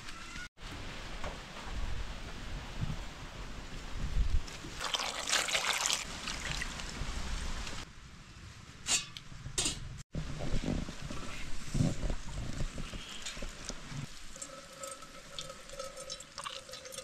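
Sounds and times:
juice pouring into container: 4.8 - 6.9, 14.1 - 17.0.

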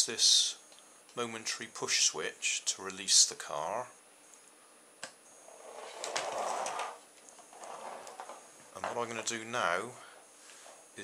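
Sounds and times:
toy car rolling on wooden floor: 5.4 - 8.4.

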